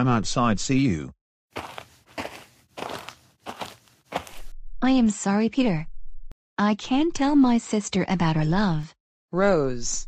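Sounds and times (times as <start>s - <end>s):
footsteps walking away: 1.6s - 4.5s.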